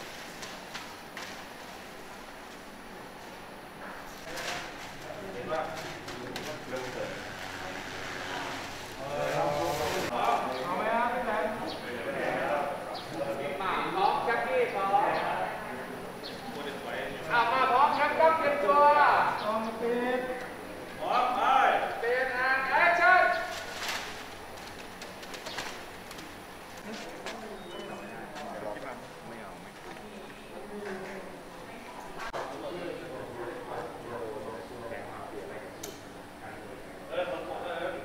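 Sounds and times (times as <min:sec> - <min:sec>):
faint voices: 0:02.7 - 0:38.0
people talking and calling out: 0:03.5 - 0:38.0
paper rustling and landing: 0:23.5 - 0:27.4.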